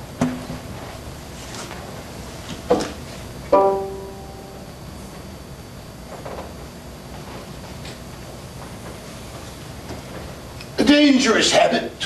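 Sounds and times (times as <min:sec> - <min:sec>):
ringing note: 0:03.5 - 0:04.9.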